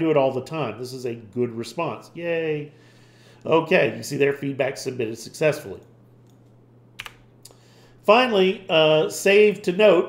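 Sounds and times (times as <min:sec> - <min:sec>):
quiet low hum: 0:00.0 - 0:10.0.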